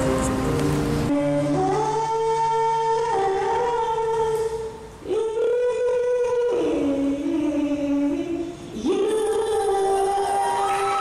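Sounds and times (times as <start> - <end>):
girl singing into microphone: 1.1 - 11.0.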